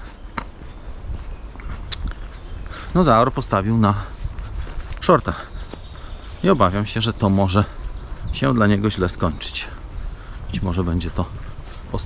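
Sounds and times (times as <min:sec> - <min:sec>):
footsteps on dirt path: 0:00.0 - 0:12.0
low microphone rumble: 0:00.0 - 0:12.0.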